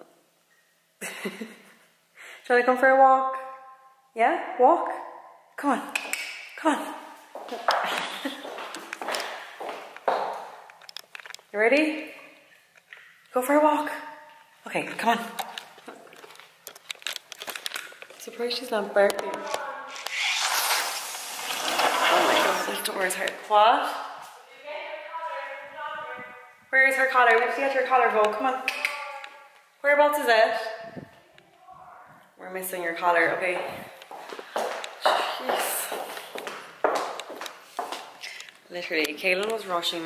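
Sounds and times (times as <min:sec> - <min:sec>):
footsteps: 0:07.2 - 0:11.6, 0:15.1 - 0:24.5, 0:33.2 - 0:40.0
camera handling crackling: 0:15.4 - 0:18.2.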